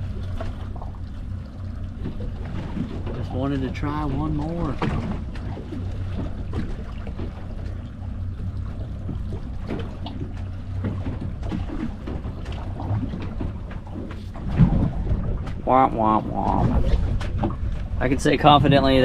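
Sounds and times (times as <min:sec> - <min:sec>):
wind and water rumble: 0:00.0 - 0:19.0.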